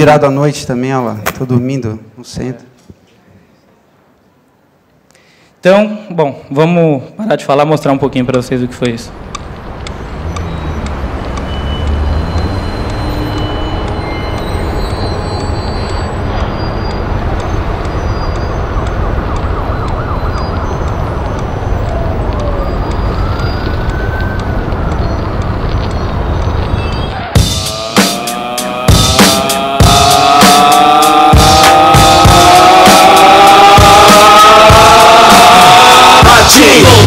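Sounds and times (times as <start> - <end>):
wailing tones rising and falling: 8.0 - 37.0
dense low rumble: 8.1 - 27.2.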